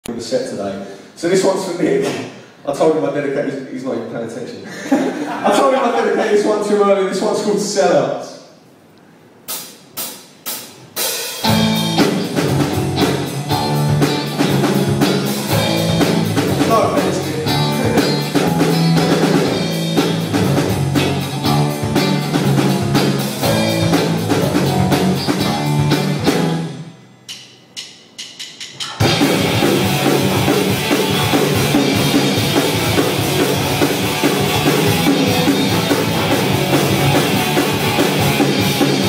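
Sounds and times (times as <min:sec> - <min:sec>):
punk rock band playing: 0:09.5 - 0:26.9, 0:28.8 - 0:39.0.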